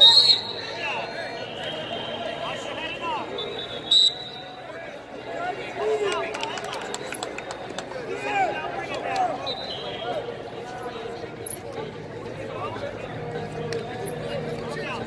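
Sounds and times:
referee's whistle blasts: 0.0 - 4.6, 9.4 - 10.2.

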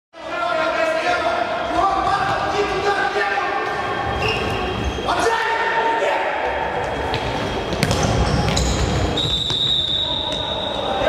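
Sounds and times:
ball thudding on wooden court: 7.1 - 9.2.

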